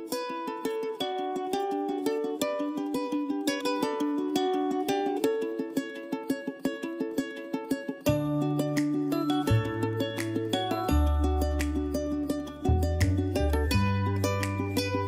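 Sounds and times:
plucked string background music: 0.0 - 15.0.

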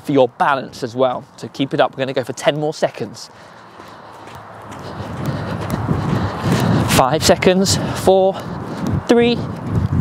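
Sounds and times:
footsteps on clay court: 0.2 - 10.0.

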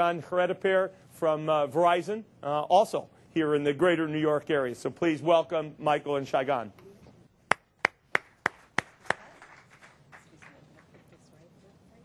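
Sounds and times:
person clapping: 7.5 - 10.9.

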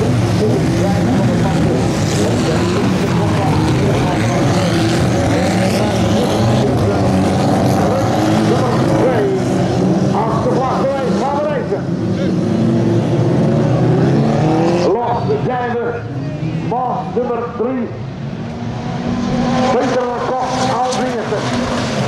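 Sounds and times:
many racing car engines: 0.0 - 22.0.

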